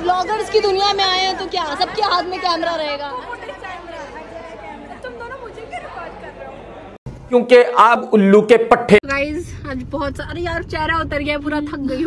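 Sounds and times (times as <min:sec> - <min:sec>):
indistinct chatter of people: 0:00.0 - 0:07.0.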